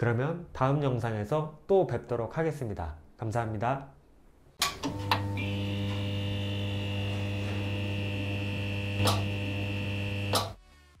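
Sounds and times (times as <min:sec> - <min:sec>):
neon sign buzzing hum: 0:04.7 - 0:10.6
neon sign switch click: 0:10.3 - 0:10.6.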